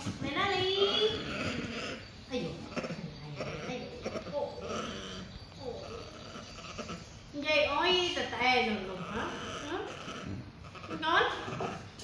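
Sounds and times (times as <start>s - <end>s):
monkey high-pitched calls: 0.5s - 12.0s.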